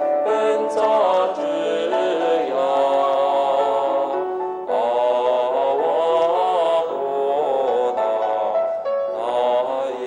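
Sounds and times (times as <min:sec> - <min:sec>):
voices chanting a slow melody: 0:00.0 - 0:10.0.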